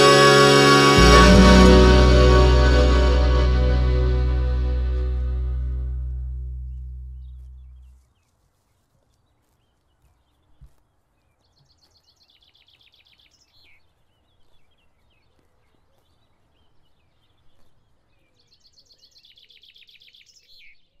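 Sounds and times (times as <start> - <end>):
music: 0.0 - 7.9
soft low bump: 5.1 - 8.0.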